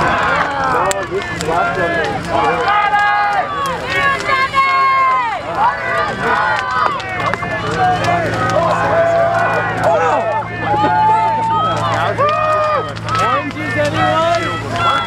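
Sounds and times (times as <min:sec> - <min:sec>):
crowd shouting: 0:00.0 - 0:15.0.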